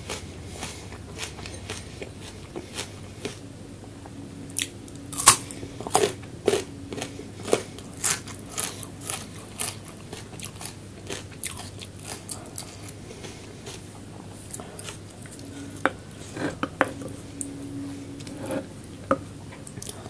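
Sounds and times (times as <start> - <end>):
person chewing food: 0.0 - 20.0.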